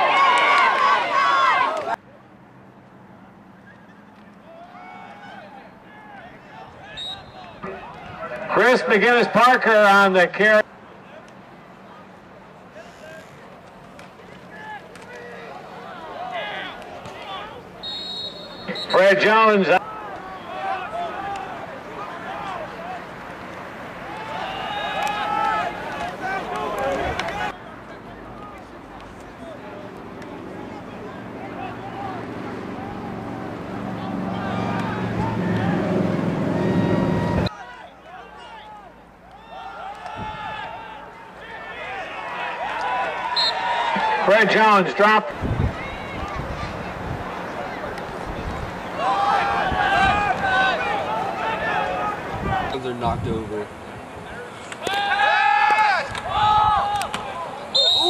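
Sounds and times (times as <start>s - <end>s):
people yelling: 0.0s - 2.0s, 3.7s - 11.2s, 14.2s - 53.0s, 54.2s - 58.0s
voices shouting and cheering: 0.0s - 2.0s, 3.2s - 58.0s
crowd noise: 0.0s - 58.0s.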